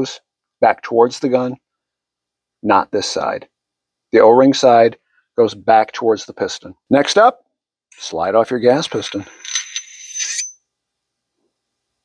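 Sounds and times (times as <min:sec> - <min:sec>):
metal-on-metal scrape with ring: 0:08.7 - 0:10.6.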